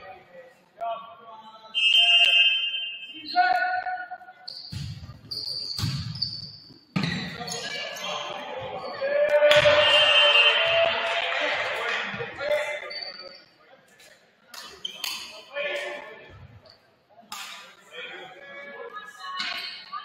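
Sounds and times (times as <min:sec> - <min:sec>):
sneakers squeaking on court: 0:04.4 - 0:09.0
people shouting and cheering: 0:07.6 - 0:12.8.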